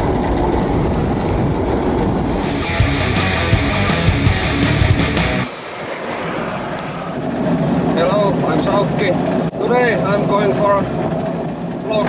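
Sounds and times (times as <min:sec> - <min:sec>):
rushing wind and tyre noise: 0:00.0 - 0:02.8, 0:05.2 - 0:09.5
intro music: 0:02.2 - 0:06.2.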